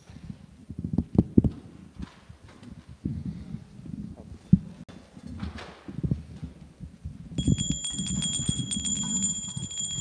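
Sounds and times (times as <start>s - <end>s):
small hand bell ringing: 7.4s - 10.0s.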